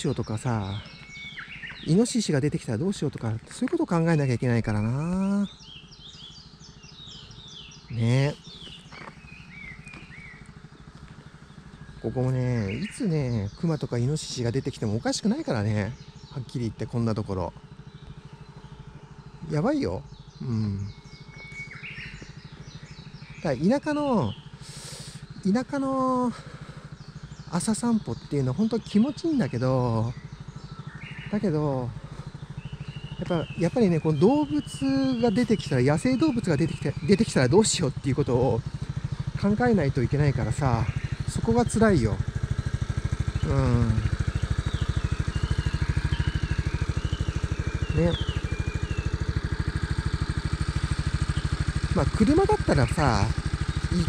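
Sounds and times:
birds chirping: 0:00.0 - 0:54.0
motorcycle engine idling: 0:00.0 - 0:54.0.

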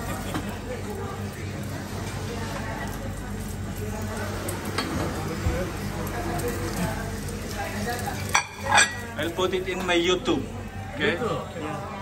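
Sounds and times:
omelette sizzling in a pan: 0:00.0 - 0:12.0.

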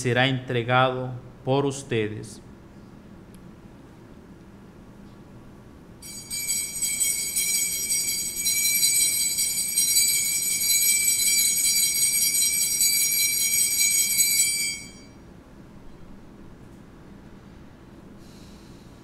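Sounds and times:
altar bells jingling: 0:06.0 - 0:15.2.

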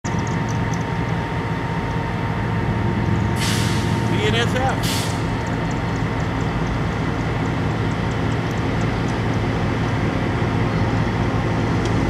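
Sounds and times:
diesel locomotive rumbling: 0:00.0 - 0:12.0
burst of hiss: 0:03.4 - 0:04.2, 0:04.8 - 0:05.4.

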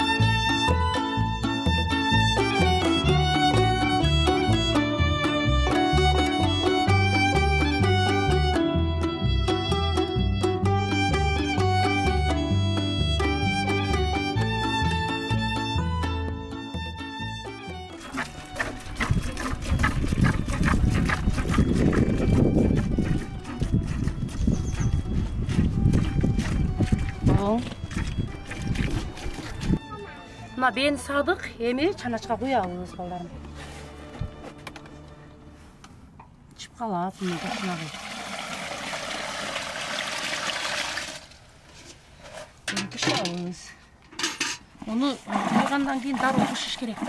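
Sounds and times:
milk squirting into metal pail: 0:17.9 - 0:29.8, 0:37.3 - 0:41.4, 0:45.2 - 0:47.0.

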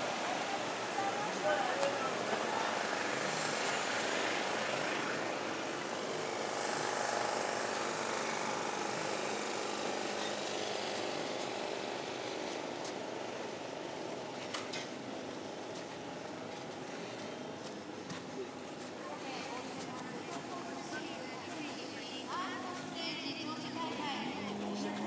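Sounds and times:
distant jet ski engines droning: 0:00.0 - 0:25.0.

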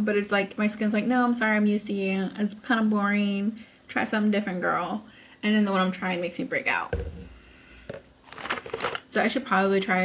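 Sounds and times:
plastic tube thump: 0:06.9 - 0:08.0
crinkling rustle: 0:07.9 - 0:09.1.

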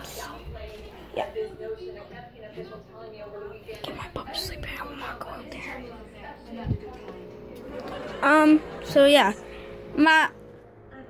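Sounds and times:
soft whispered speech: 0:03.6 - 0:06.2.

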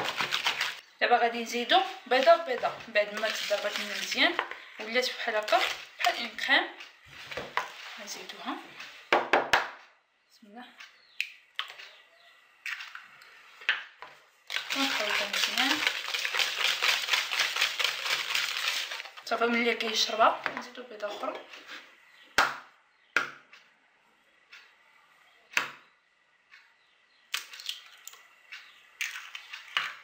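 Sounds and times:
whisk beating cream in a bowl: 0:14.5 - 0:19.8.

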